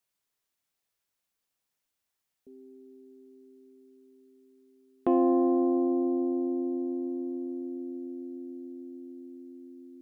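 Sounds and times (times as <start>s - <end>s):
soft sustained pure tone: 2.5s - 10.0s.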